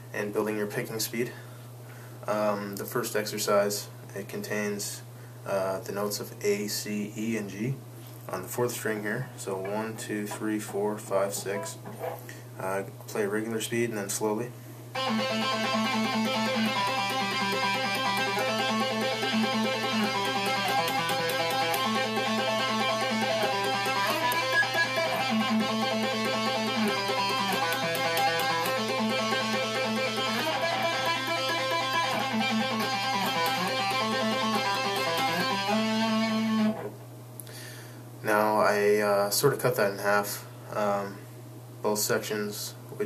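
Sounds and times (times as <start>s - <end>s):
electric guitar tapping: 9.5s - 12.2s, 15.0s - 37.0s.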